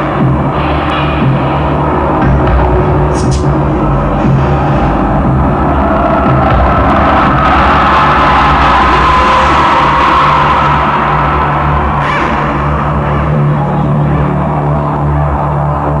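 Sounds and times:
electronic dance music: 0.0s - 16.0s.

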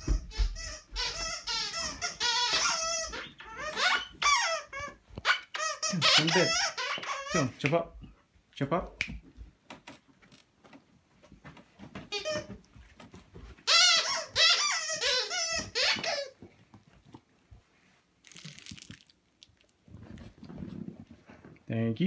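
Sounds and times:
squeaky dog toy squeaking: 0.0s - 7.6s, 12.1s - 12.5s, 13.6s - 16.4s.

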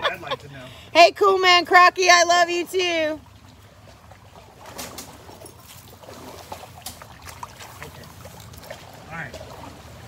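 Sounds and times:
shallow water splashing and trickling: 2.8s - 10.0s
small splashes and clicks: 3.5s - 9.8s.

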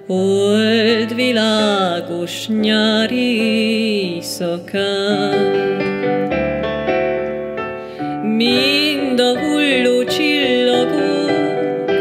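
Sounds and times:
person singing: 0.0s - 6.2s, 8.0s - 12.0s
piano playing held chords: 0.0s - 12.0s.

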